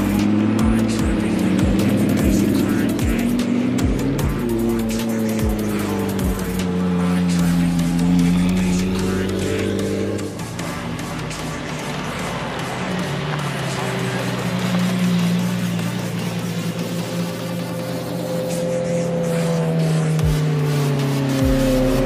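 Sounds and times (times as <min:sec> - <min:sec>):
background music with steady beat: 0:00.0 - 0:22.0
sports car engines running: 0:00.0 - 0:22.0.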